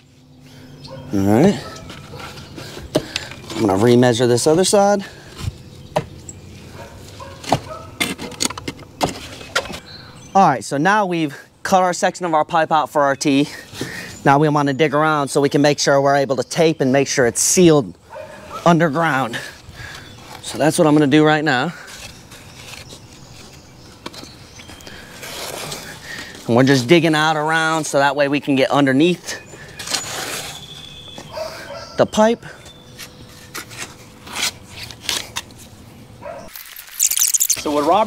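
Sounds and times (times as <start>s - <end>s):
shovel digging in soil: 36.5s - 38.0s.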